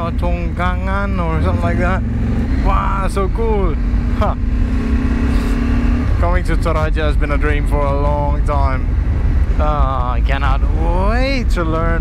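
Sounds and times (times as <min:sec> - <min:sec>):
motorcycle engine cruising: 0:00.0 - 0:12.0.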